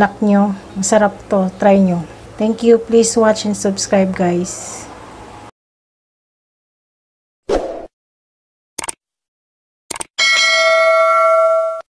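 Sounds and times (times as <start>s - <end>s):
bell ding: 10.2s - 11.9s.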